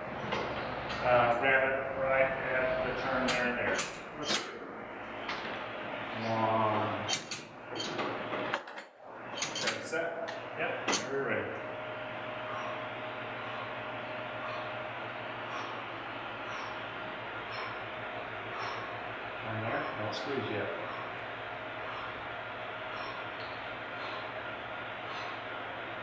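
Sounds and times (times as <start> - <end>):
electric fans whirring: 0.0 - 26.0.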